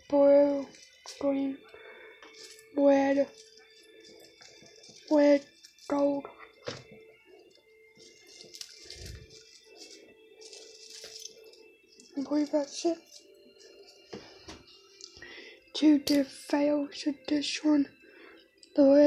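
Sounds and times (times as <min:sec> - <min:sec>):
artificial tree branches rustling: 0:00.0 - 0:15.0
faint background music: 0:00.0 - 0:19.0
person speaking: 0:05.0 - 0:06.6, 0:12.1 - 0:13.1.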